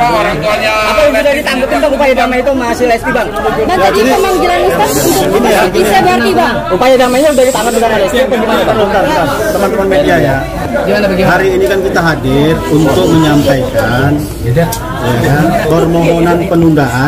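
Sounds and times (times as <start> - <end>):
overlapping indistinct chatter: 0.0 - 17.0.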